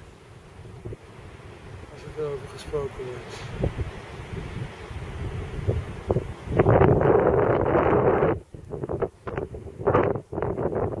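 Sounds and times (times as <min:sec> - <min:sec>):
wind buffeting the microphone: 0:00.0 - 0:11.0.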